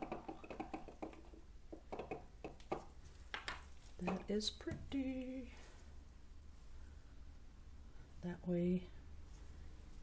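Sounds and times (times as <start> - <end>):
low steady hum: 0.0 - 10.0
soft clicks and rustles: 2.6 - 6.0.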